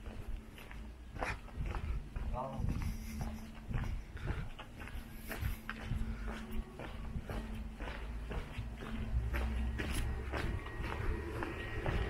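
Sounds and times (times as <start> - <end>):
footsteps on cobblestones: 0.0 - 12.0.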